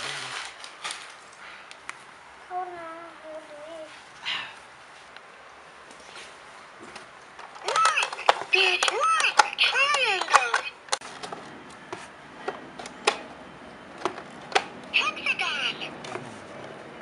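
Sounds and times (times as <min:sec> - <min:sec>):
high-pitched sing-song voice: 0:02.5 - 0:04.0
plastic toy parts clicking: 0:07.4 - 0:11.0.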